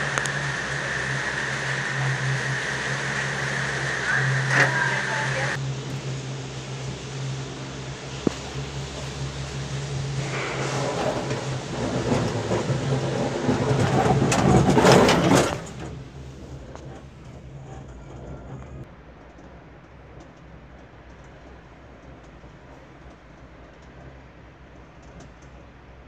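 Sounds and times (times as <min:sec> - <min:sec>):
gondola cabin rumbling and rattling: 0:00.0 - 0:26.0
machinery hum: 0:00.0 - 0:26.0.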